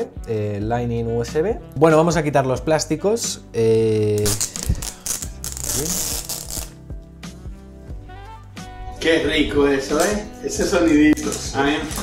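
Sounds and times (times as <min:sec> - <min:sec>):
background music: 0:00.0 - 0:12.0
plastic film being peeled: 0:04.1 - 0:06.8.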